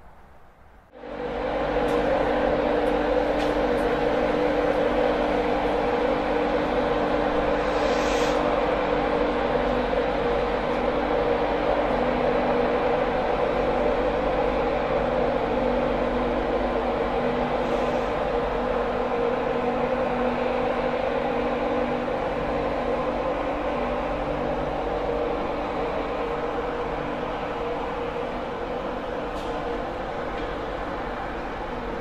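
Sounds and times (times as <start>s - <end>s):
electric locomotive hum: 0.0s - 32.0s
brief hiss: 7.6s - 8.5s.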